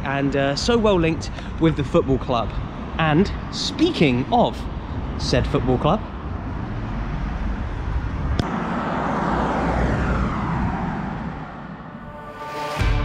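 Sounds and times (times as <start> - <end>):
passing vehicle engine: 6.0 - 13.0.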